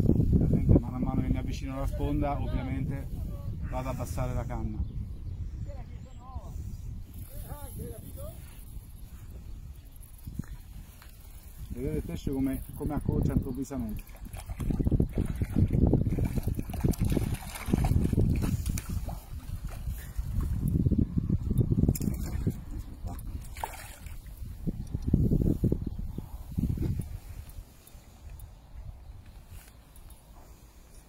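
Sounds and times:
water sloshing and splashing: 13.9 - 20.7, 21.9 - 24.4.

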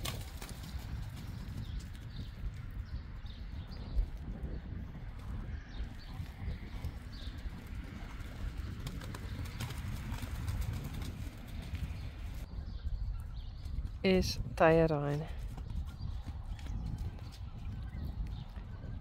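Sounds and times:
horse hooves trotting on sand: 0.0 - 12.5, 13.2 - 19.0.

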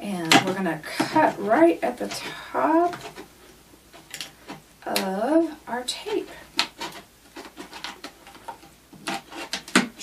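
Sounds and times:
scissors snipping plastic: 6.5 - 10.0.

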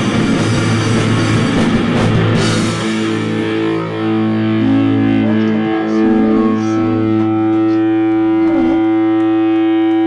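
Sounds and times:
distorted electric guitar drone: 0.0 - 10.0.

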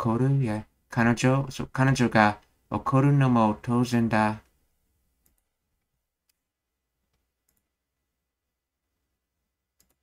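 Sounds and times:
man's voice: 0.0 - 4.5
computer mouse clicks: 5.2 - 6.4, 7.1 - 7.7, 9.8 - 10.0.

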